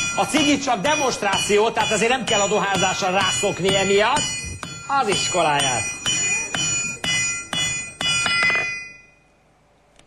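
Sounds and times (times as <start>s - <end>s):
hammer ringing on anvil: 0.0s - 9.2s.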